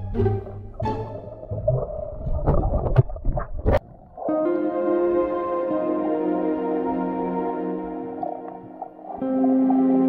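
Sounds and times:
water splashes: 0.3s - 10.0s
muffled underwater rumble: 0.4s - 5.2s.

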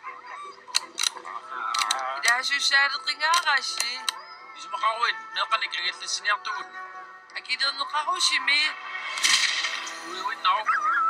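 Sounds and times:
background music: 0.0s - 11.0s
person speaking: 1.7s - 4.2s
sharp crack with hissing tail: 9.0s - 10.2s.

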